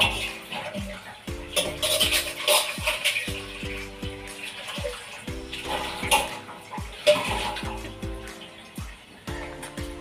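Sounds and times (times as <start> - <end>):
background music with bass: 0.0 - 10.0
tap water running: 0.0 - 10.0
metal utensils clinking: 1.6 - 3.4.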